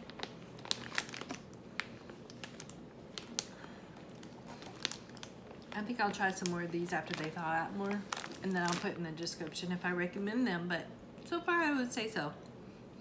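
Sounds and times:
plastic pouch crinkling: 0.0s - 9.4s.

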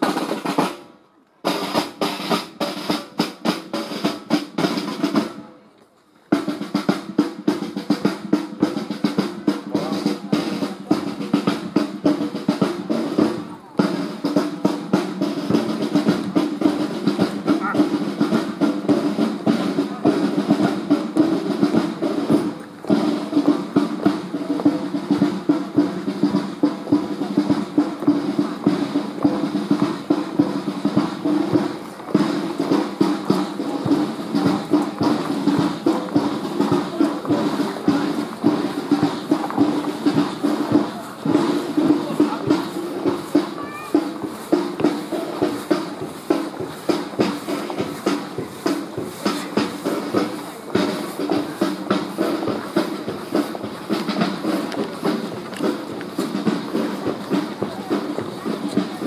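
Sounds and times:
parade snare and bass drums: 0.0s - 5.6s, 6.2s - 59.0s.

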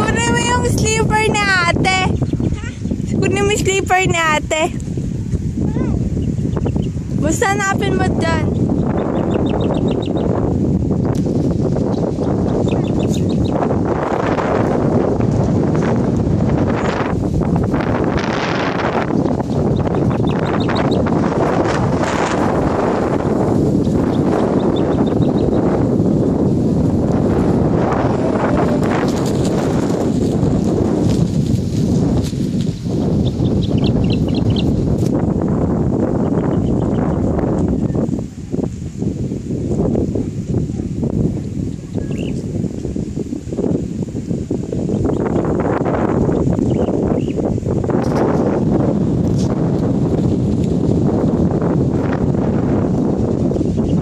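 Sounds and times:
wind blowing over microphone: 0.0s - 54.0s.

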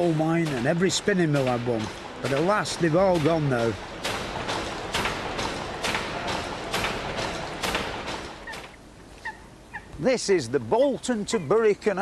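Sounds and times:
steam engine mechanical beat: 0.0s - 8.8s.

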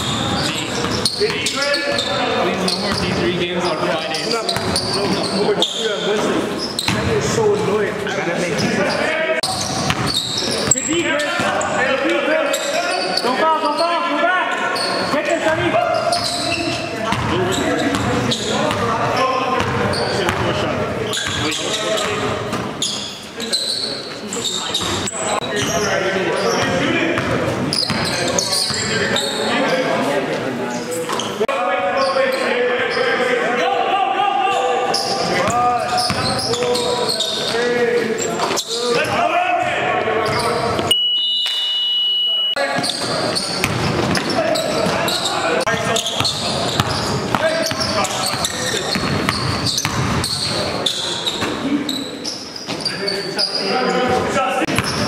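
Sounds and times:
voices echoing in hall: 0.0s - 55.0s.

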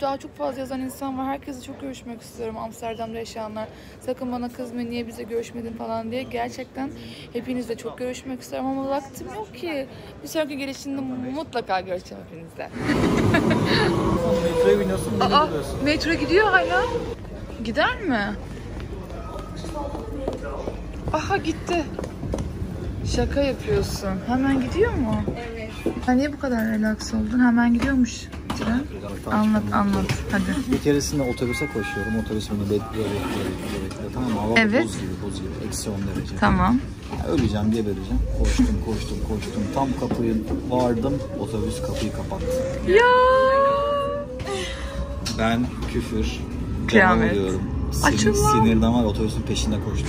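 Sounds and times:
metro train rumbling: 12.7s - 17.2s, 44.9s - 50.0s
faint voices: 36.9s - 50.0s.

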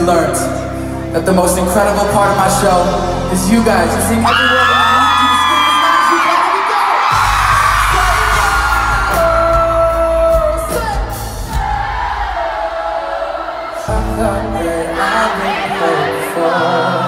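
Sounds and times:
live pop music: 0.0s - 17.0s
crowd screaming and cheering: 0.2s - 17.0s
bass guitar: 7.2s - 11.7s.

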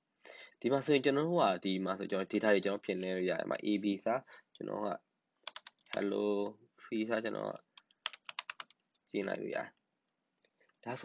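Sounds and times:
typing on computer keyboard: 5.4s - 6.0s, 7.8s - 8.9s.

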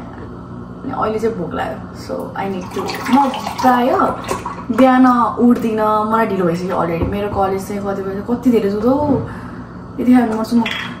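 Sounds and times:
woman talking: 0.8s - 9.3s, 10.0s - 10.9s
milk pouring into mug: 2.6s - 4.4s.

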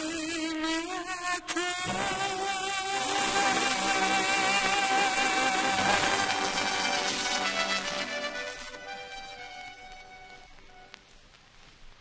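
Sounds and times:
pop song from vinyl record: 1.9s - 12.0s.

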